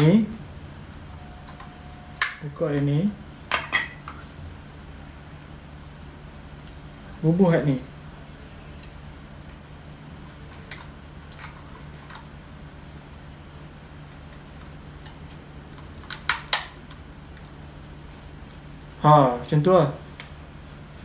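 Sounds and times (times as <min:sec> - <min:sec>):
sharp plastic snaps: 0:15.0 - 0:17.6.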